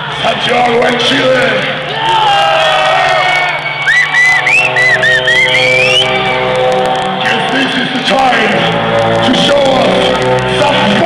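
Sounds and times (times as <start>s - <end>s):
high squealing guitar tones: 3.9s - 6.5s.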